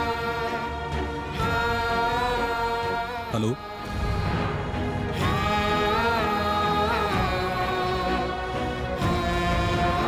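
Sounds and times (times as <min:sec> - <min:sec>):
slow dramatic background music: 0:00.0 - 0:10.0.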